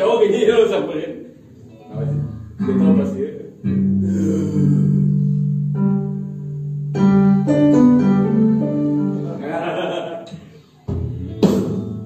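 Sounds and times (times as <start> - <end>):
live band playing slow chords: 3.7 - 12.0.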